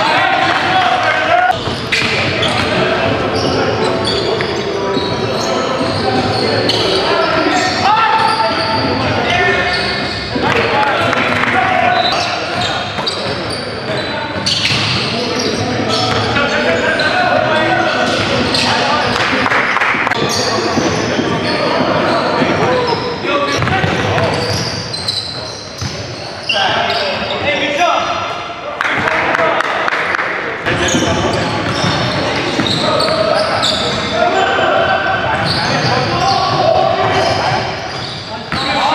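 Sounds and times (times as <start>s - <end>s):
players calling out: 0.0s - 38.9s.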